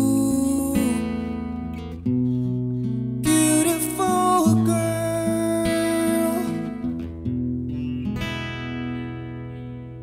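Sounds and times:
acoustic guitar strummed: 0:00.0 - 0:10.0.

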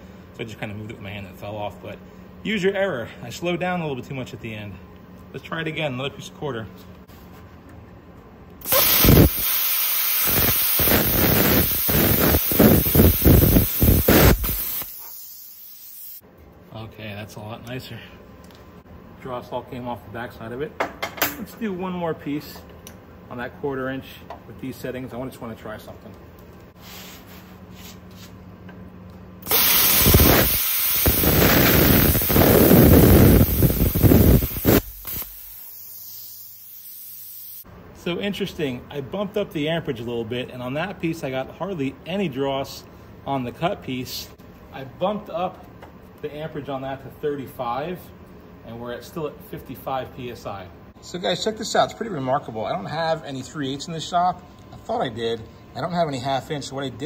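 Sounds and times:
air hissing: 0:08.6 - 0:16.2, 0:29.4 - 0:37.7
plasma cutter arc hissing and crackling: 0:08.7 - 0:16.2, 0:29.4 - 0:37.6.

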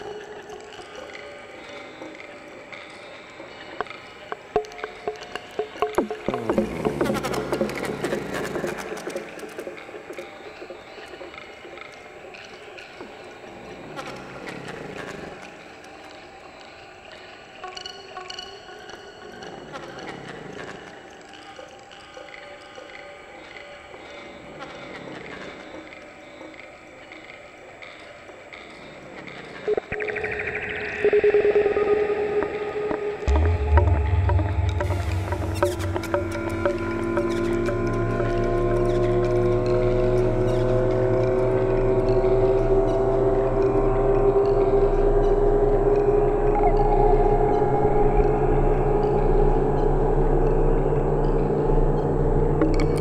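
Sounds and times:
modular synthesizer music: 0:00.0 - 0:28.9, 0:29.6 - 0:53.0
deep bass drone: 0:06.0 - 0:08.7, 0:33.2 - 0:53.0.

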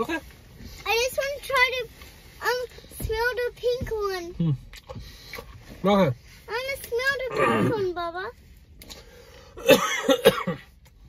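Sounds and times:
person coughing: 0:09.6 - 0:10.7.

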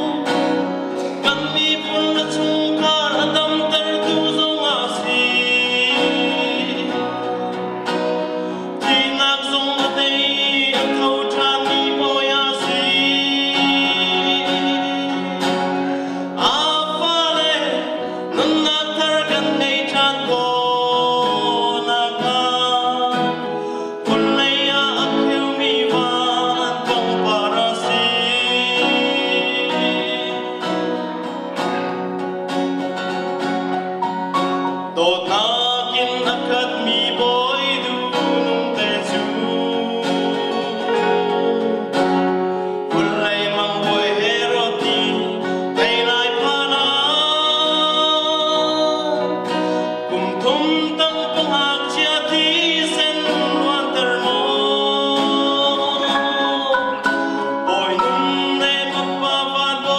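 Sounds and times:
man singing into microphone: 0:00.0 - 0:32.4, 0:34.4 - 0:59.9
acoustic guitar: 0:00.0 - 0:59.9.

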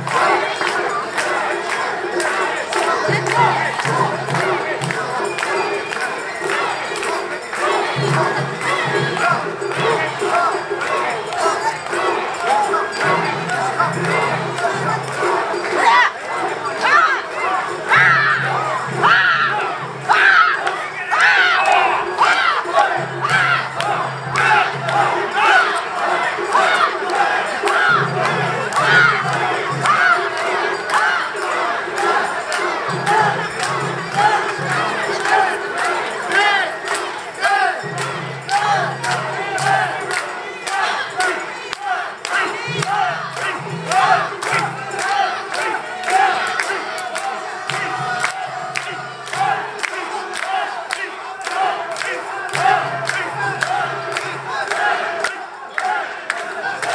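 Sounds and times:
crowd chanting in unison: 0:00.0 - 0:56.9
short rhythmic shouts: 0:00.0 - 0:56.9.

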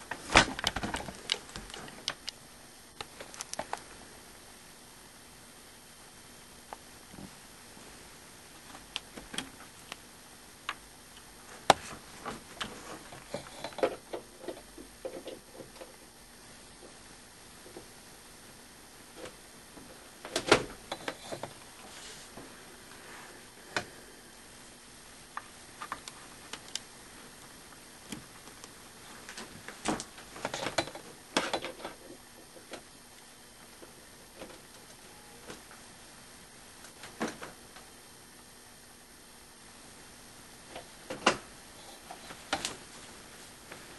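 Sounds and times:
wire connectors clicking and rattling: 0:00.0 - 0:02.4, 0:03.0 - 0:03.9.

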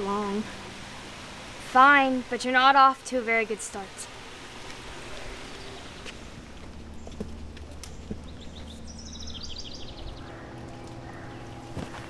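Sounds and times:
outdoor background noise: 0:00.0 - 0:12.0
bird trilling: 0:07.9 - 0:12.0.

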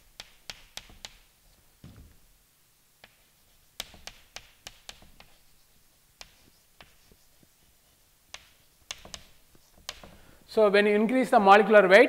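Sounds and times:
chalk tapping on blackboard: 0:00.0 - 0:01.6, 0:03.0 - 0:10.3.

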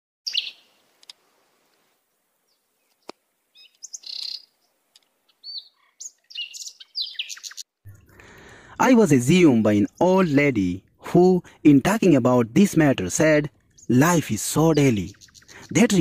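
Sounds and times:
birds chirping: 0:00.3 - 0:00.8, 0:02.4 - 0:16.0.

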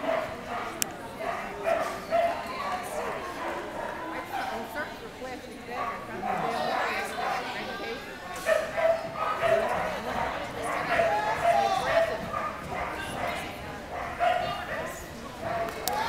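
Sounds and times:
people talking: 0:00.0 - 0:16.0
dog barking and yipping: 0:14.0 - 0:15.0.

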